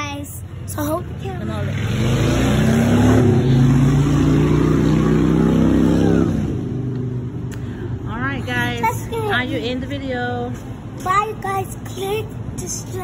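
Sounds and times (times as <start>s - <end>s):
car engine revving past: 1.5s - 7.3s.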